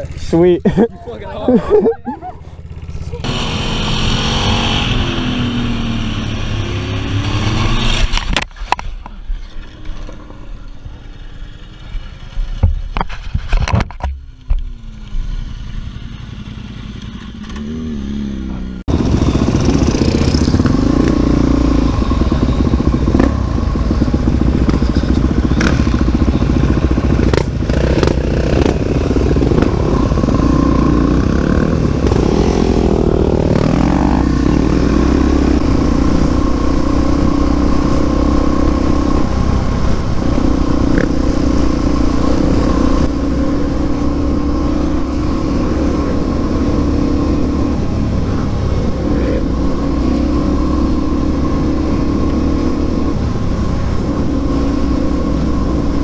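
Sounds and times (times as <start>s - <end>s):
road and wind noise: 0.0s - 56.0s
motorcycle engine running: 2.0s - 8.2s, 14.2s - 56.0s.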